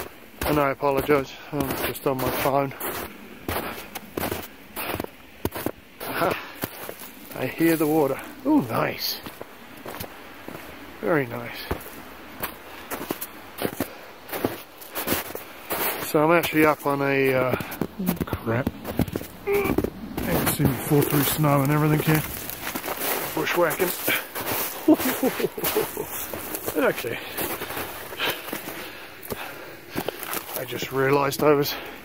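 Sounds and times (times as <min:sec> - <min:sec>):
footsteps on dirt trail: 0:00.0 - 0:32.0.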